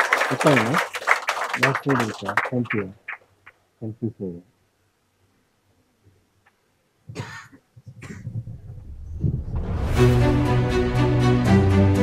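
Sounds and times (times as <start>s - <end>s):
person coughing: 7.1s - 8.4s.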